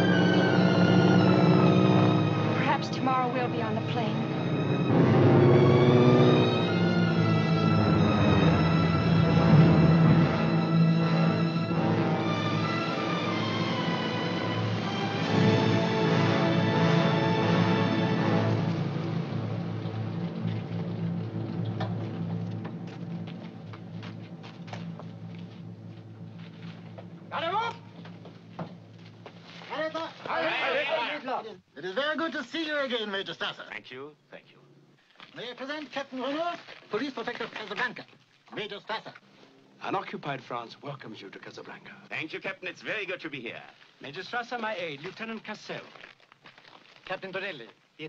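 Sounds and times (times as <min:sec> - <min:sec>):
orchestral strings: 0:00.0 - 0:31.3
steady low hum: 0:18.6 - 0:29.5
boot footsteps clicking: 0:19.8 - 0:29.7, 0:44.5 - 0:47.9.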